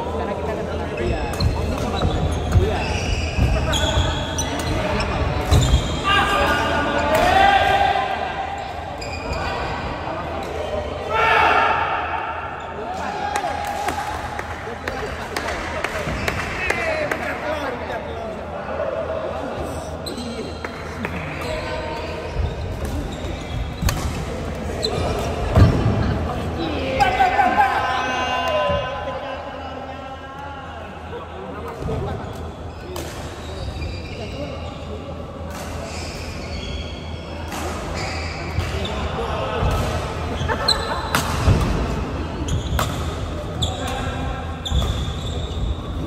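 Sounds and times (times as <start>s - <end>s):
rackets hitting shuttlecock: 42.7s - 43.2s.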